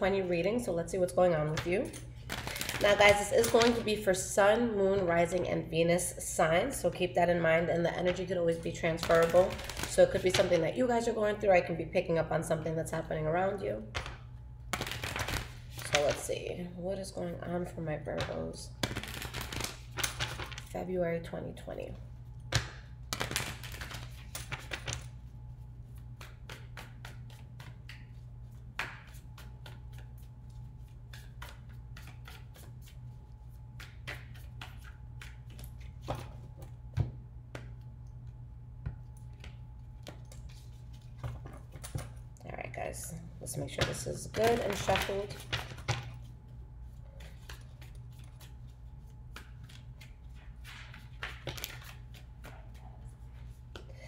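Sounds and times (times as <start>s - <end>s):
cards being shuffled: 2.2s - 3.9s, 9.0s - 10.5s, 13.9s - 16.3s, 18.8s - 20.7s, 22.5s - 25.2s, 25.8s - 36.8s, 39.2s - 42.2s, 44.3s - 53.8s
slap of cards: 22.5s - 25.0s, 26.2s - 28.1s, 28.8s - 30.0s.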